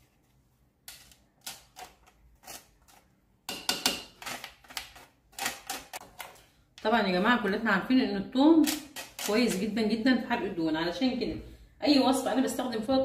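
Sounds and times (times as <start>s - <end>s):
spoon scraping metal grater: 1.0s - 3.0s, 4.0s - 6.0s, 8.6s - 9.8s.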